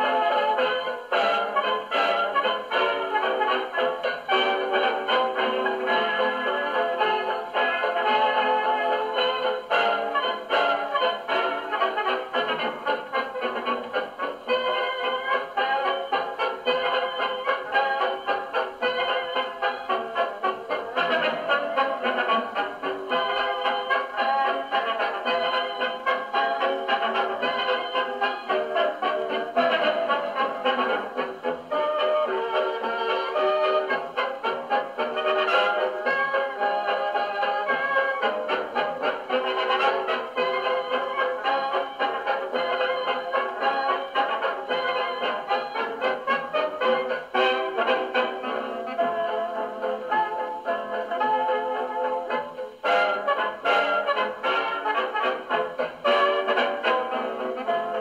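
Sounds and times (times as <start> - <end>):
dance band with brass on gramophone: 0.0 - 58.0.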